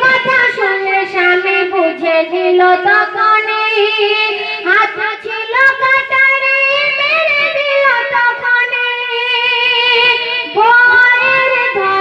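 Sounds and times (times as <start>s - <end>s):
woman singing into microphone: 0.0s - 12.0s.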